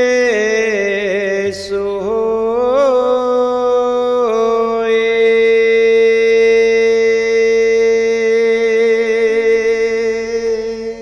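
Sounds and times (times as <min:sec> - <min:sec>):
voice chanting a long note: 0:00.0 - 0:11.0.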